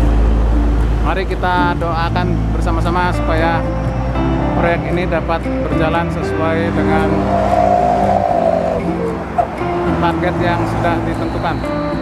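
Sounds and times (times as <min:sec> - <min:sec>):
road vehicle passing by: 0:06.4 - 0:11.1.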